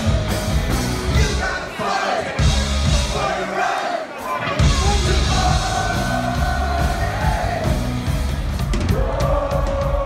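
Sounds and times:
crowd singing and shouting along: 0.0 - 10.0
live cover band playing: 0.0 - 10.0.

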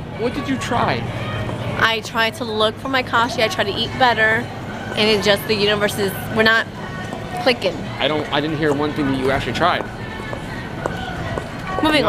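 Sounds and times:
faint background music: 0.0 - 12.0
store background noise: 0.0 - 12.0.

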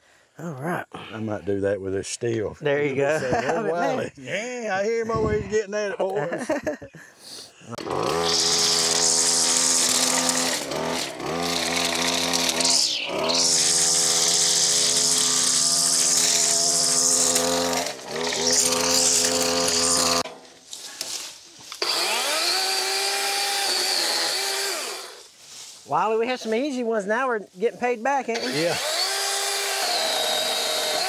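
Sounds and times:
string trimmer revving: 7.8 - 21.1, 21.8 - 25.2, 28.3 - 31.0.

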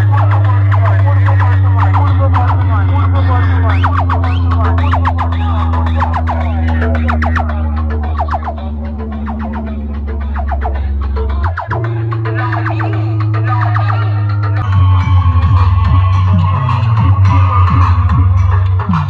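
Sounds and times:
loud music with heavy bass: 0.0 - 19.0.

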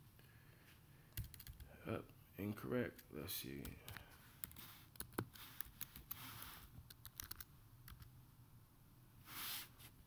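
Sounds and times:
keyboard typing clicks: 1.2 - 1.7, 6.9 - 8.1.

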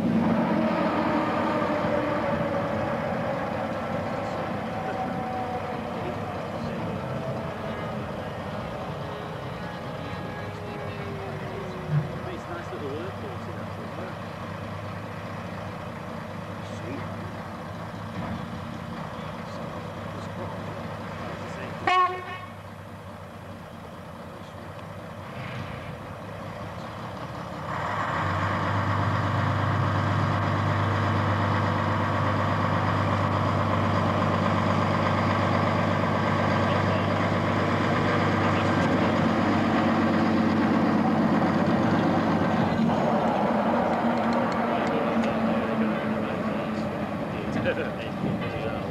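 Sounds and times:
diesel locomotive engine running: 0.0 - 48.9
horn toot: 21.8 - 22.6.

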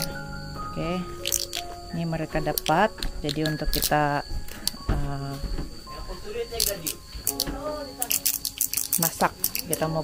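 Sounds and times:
voices talking: 0.7 - 10.0.

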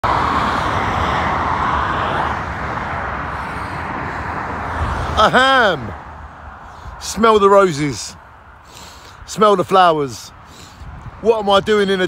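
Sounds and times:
cars passing on road: 0.0 - 12.0.

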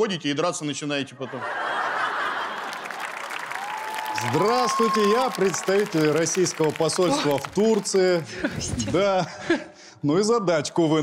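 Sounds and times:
audience applauding: 1.8 - 8.3.

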